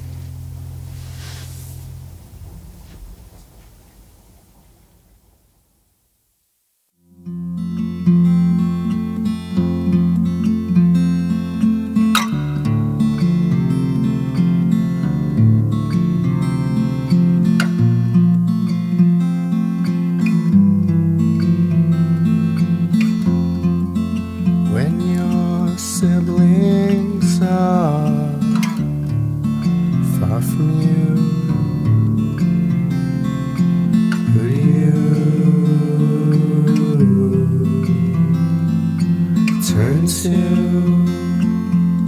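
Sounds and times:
acoustic guitar music: 0.0s - 4.8s, 7.0s - 42.0s.

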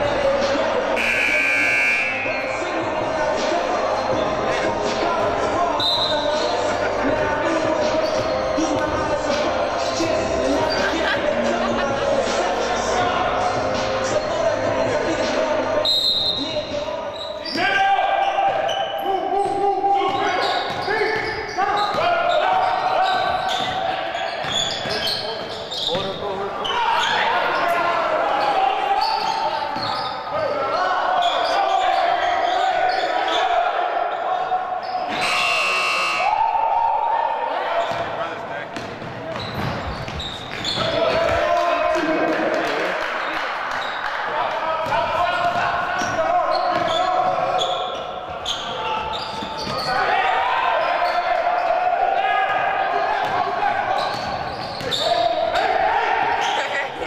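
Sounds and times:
voices: 0.0s - 57.0s.

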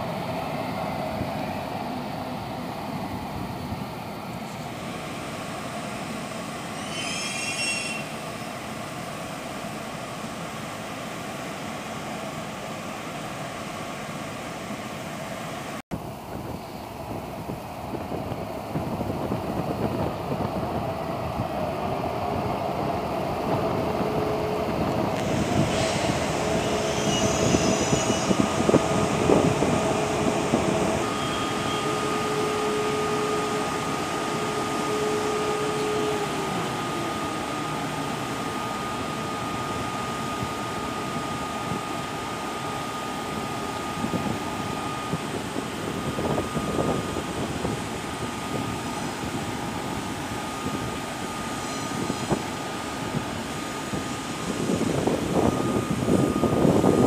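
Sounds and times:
electric locomotive whine: 0.0s - 57.0s
train motors humming and rumbling: 0.0s - 57.0s.

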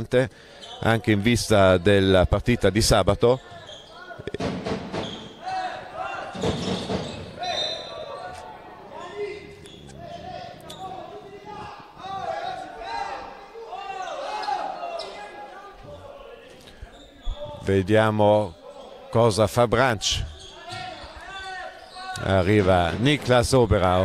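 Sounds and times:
voices calling out: 0.5s - 17.7s.

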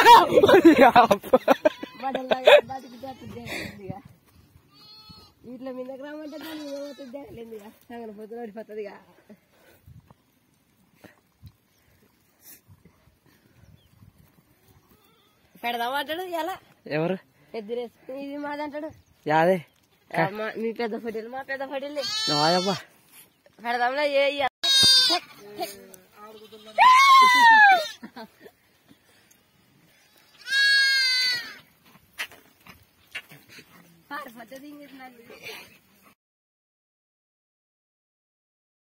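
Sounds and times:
long loud bleat: 4.7s - 5.4s, 6.2s - 7.3s, 22.0s - 22.9s, 24.6s - 25.5s, 30.1s - 31.6s.

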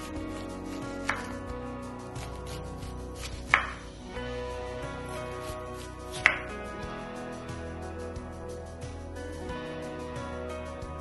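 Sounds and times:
knife slicing onion: 0.0s - 1.4s, 2.0s - 3.9s, 5.0s - 6.6s
knife striking cutting board: 0.0s - 1.4s, 2.2s - 3.9s, 5.2s - 6.5s
soft background music: 0.0s - 11.0s.

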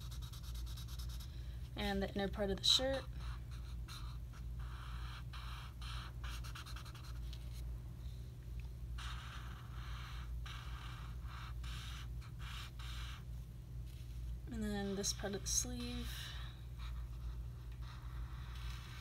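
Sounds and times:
marker scratching on paper: 0.0s - 7.6s, 9.0s - 13.3s, 14.8s - 19.0s.

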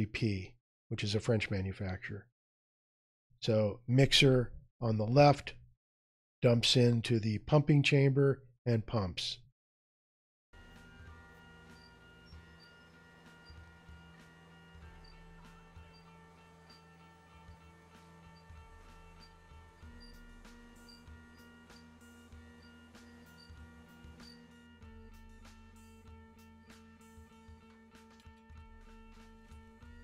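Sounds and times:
faint background music: 10.6s - 30.0s.

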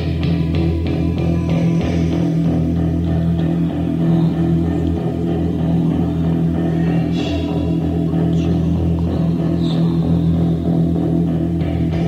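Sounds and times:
bass guitar: 0.0s - 12.0s
electric guitar sustained notes: 0.0s - 12.0s.

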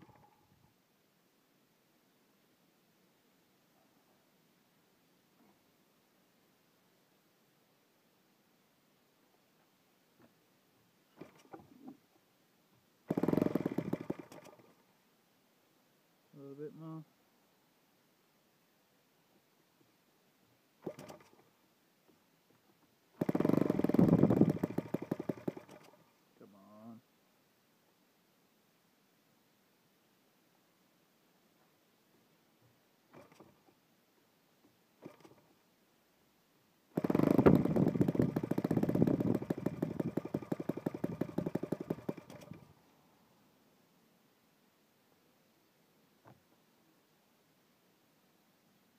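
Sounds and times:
model engine popping and running: 13.1s - 14.6s, 20.8s - 21.4s, 23.2s - 26.0s, 33.1s - 33.6s, 35.0s - 35.4s, 37.0s - 42.6s.

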